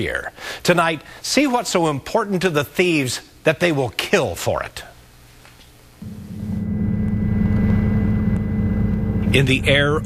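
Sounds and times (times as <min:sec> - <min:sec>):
aircraft engine drone: 0:06.0 - 0:10.0.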